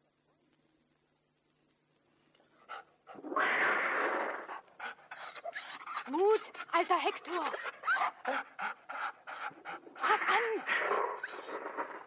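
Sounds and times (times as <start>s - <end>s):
harsh rasping burst: 3.2s - 4.7s
dog whimpering: 4.8s - 12.0s.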